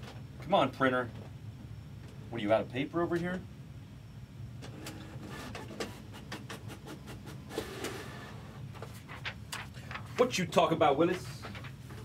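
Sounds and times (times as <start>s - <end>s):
printer whir: 4.6s - 8.9s.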